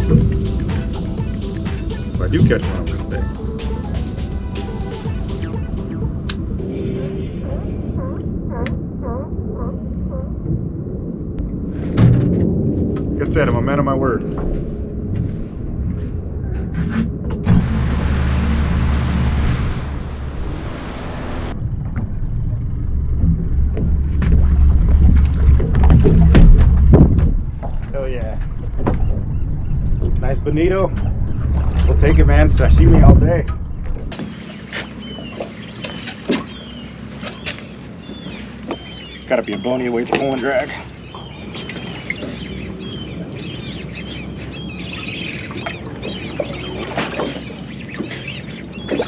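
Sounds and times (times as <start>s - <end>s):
outboard motor humming: 0.0s - 9.7s, 17.4s - 27.9s, 28.6s - 49.0s
seabirds crying: 0.0s - 10.4s, 33.8s - 49.0s
wind and water rushing: 0.0s - 16.4s, 17.1s - 21.6s, 23.4s - 49.0s.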